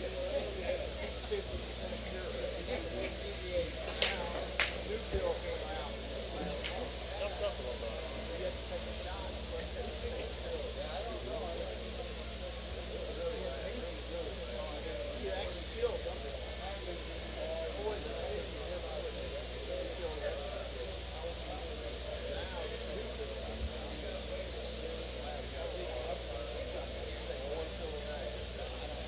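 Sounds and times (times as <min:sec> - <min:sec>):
indistinct chatter: 0:00.0 - 0:29.0
steady low hum: 0:00.0 - 0:29.0.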